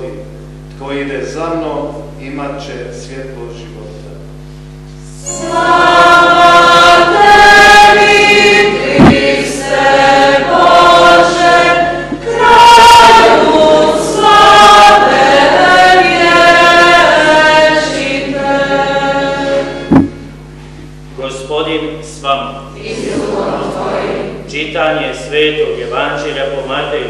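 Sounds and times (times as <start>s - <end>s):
woman singing a chant: 5.2s - 19.7s, 22.8s - 24.4s
low thump: 8.9s - 9.3s, 19.9s - 20.2s.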